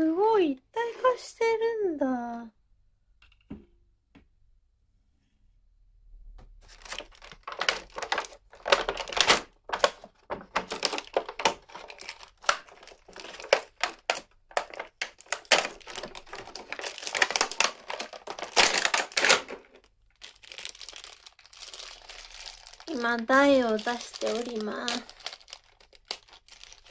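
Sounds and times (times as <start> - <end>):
plastic packaging crinkling and tearing: 6.6 - 26.9.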